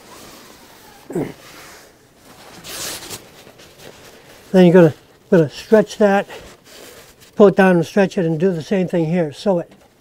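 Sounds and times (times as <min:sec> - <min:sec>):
fabric rustling swish: 0:00.0 - 0:05.2.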